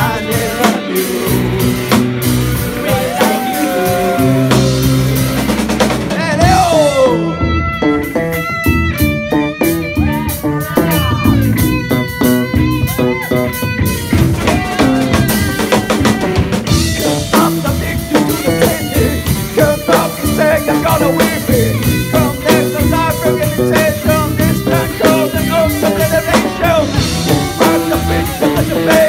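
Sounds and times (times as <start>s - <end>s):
bass guitar: 0.0s - 29.0s
drum kit: 0.0s - 29.0s
electric guitar: 0.0s - 29.0s.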